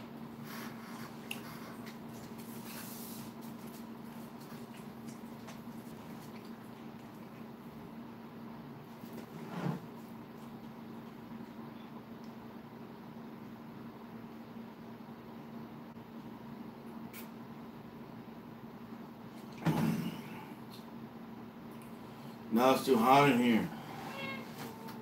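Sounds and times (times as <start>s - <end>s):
low room hum: 0.0s - 25.0s.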